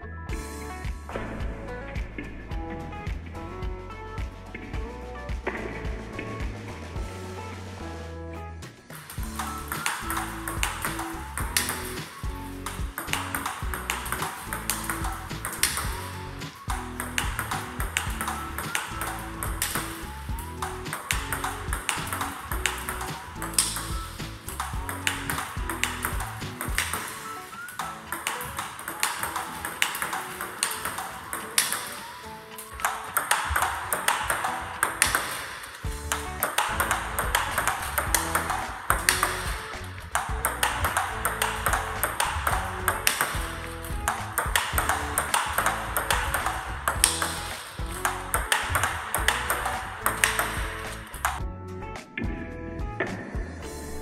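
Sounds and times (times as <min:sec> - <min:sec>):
background music: 0:00.0 - 0:54.0
paddle hitting table tennis ball: 0:08.9 - 0:51.4
ball bouncing on table: 0:09.0 - 0:51.4.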